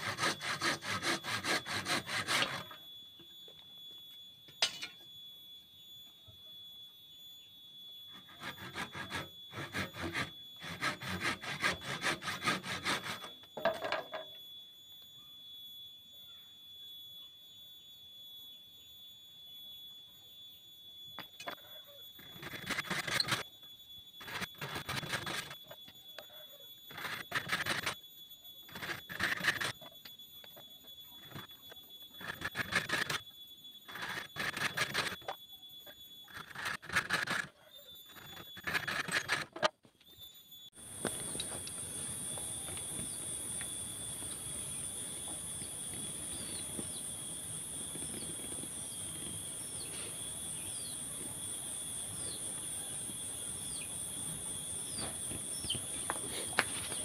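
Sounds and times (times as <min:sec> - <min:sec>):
hand saw cutting wood: 0:00.0 - 0:02.8, 0:08.2 - 0:13.3
faint steady high tone: 0:00.0 - 0:57.0.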